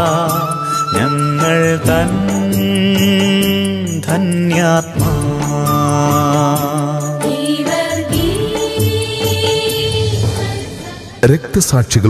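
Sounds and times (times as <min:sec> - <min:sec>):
slow melody line: 0:00.0 - 0:10.0
light percussion: 0:00.0 - 0:12.0.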